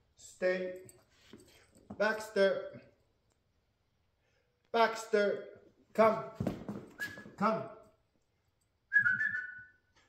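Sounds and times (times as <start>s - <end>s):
man whistling: 6.9s - 7.4s, 8.9s - 10.0s.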